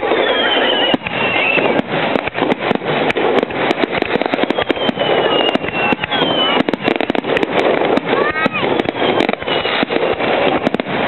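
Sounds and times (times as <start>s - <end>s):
falling firework whistle: 0.0s - 11.0s
fireworks crackling and popping: 0.0s - 11.0s.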